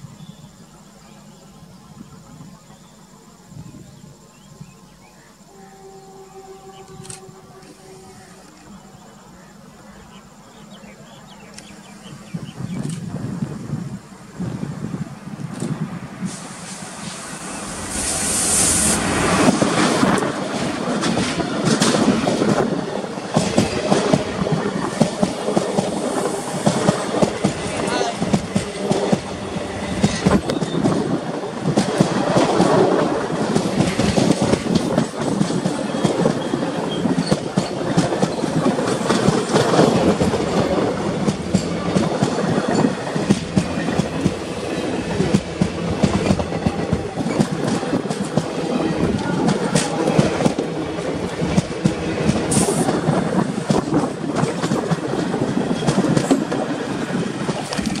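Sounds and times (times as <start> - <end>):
train rushing noise: 5.5 - 58.0
train wheels clattering: 15.3 - 58.0.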